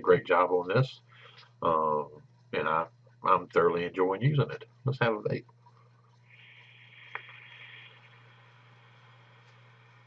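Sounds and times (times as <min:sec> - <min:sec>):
airy hiss of vape draw: 0:06.3 - 0:10.0.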